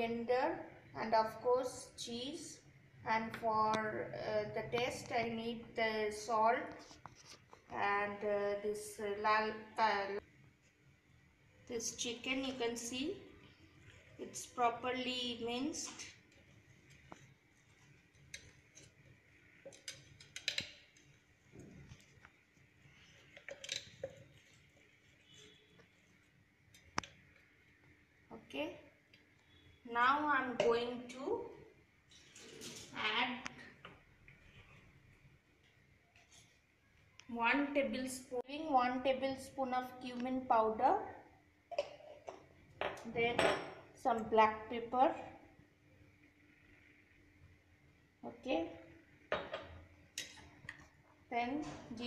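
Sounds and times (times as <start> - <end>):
small steel bowls clinking: 16.9 - 21.2, 22.9 - 25.6
spoon scraping containers and bowl: 22.9 - 26.2.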